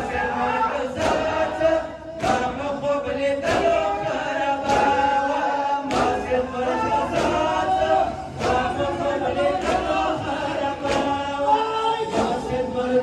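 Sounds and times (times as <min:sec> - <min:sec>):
men chanting: 0:00.0 - 0:13.0
chest slaps in unison: 0:01.0 - 0:01.5, 0:02.2 - 0:02.6, 0:03.4 - 0:03.8, 0:04.6 - 0:05.1, 0:05.9 - 0:06.3, 0:08.4 - 0:08.8, 0:10.8 - 0:11.2.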